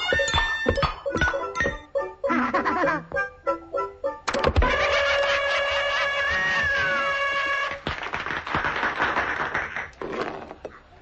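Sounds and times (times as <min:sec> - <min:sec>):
wailing cry: 0:04.7 - 0:07.8.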